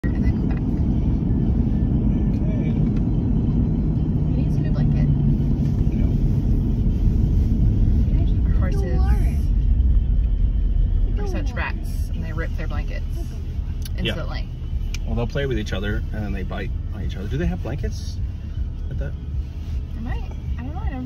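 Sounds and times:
car cabin road and engine rumble: 0.0s - 21.0s.

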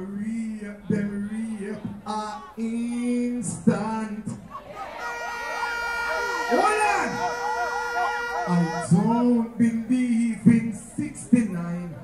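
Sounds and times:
dancehall backing music: 0.9s - 9.9s
siren effect wails: 5.0s - 8.9s.

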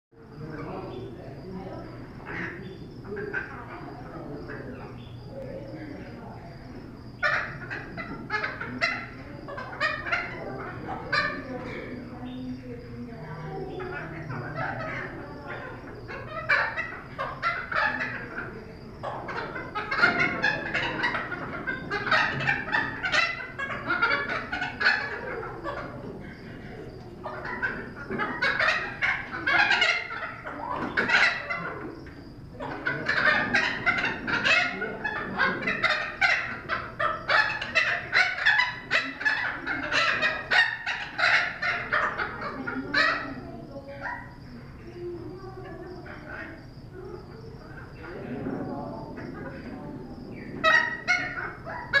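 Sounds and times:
parrot chattering calls: 13.7s - 44.9s, 49.1s - 52.0s.

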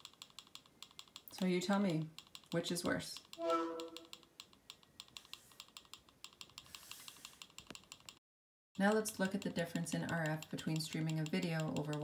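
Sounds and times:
emf meter rapid clicks: 0.0s - 3.4s, 4.0s - 8.2s, 8.8s - 12.0s.

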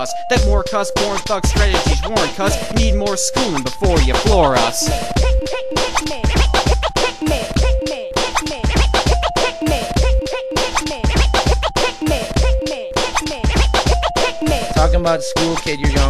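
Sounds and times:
instrumental hip hop beat: 0.0s - 16.0s
turntable scratching: 1.0s - 16.0s.

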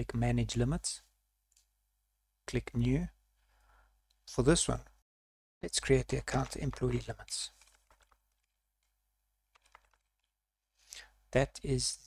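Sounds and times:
faint keyboard typing: 5.9s - 10.4s.

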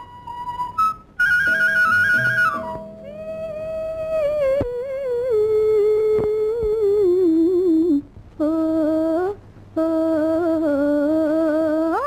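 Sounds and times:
woman singing wordless melody: 3.0s - 12.0s.

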